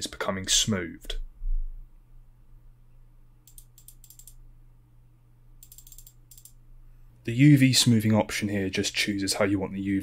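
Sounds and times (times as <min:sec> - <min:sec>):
faint low hum: 0:00.0 - 0:10.0
rapid computer mouse clicking: 0:03.4 - 0:04.4, 0:05.6 - 0:06.6.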